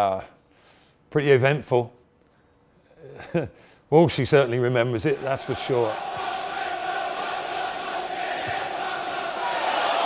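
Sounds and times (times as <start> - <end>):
stadium crowd chanting: 5.0 - 10.0.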